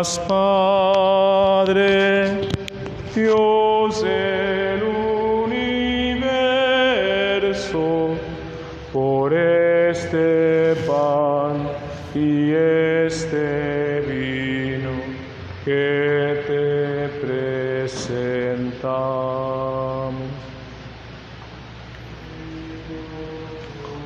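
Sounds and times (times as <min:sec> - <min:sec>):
slow hymn singing: 0:00.0 - 0:24.0.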